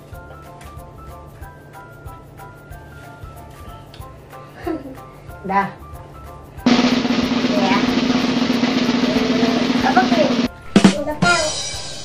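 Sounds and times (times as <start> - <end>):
sharp drum hit: 6.7 - 12.0
snare drum roll: 6.7 - 12.0.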